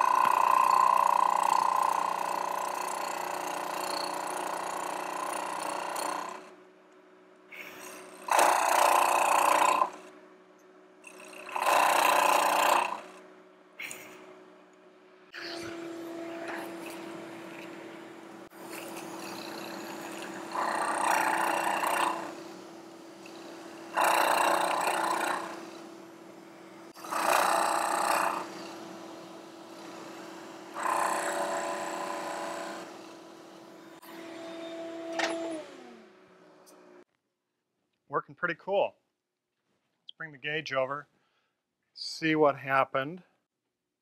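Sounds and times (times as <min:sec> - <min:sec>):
cutter milling hardwood: 0:00.0 - 0:06.5, 0:08.0 - 0:10.1, 0:11.0 - 0:13.2, 0:15.4 - 0:36.0
milling machine spindle humming: 0:15.4 - 0:36.0.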